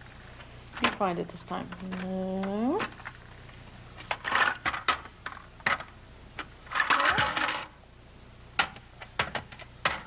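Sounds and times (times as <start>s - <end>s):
plastic shapes clattering: 4.0s - 5.9s, 6.7s - 7.8s, 8.6s - 10.0s.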